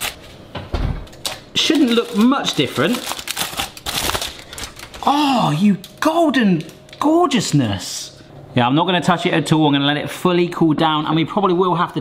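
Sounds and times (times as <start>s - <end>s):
aluminium foil crinkling: 1.1s - 7.5s.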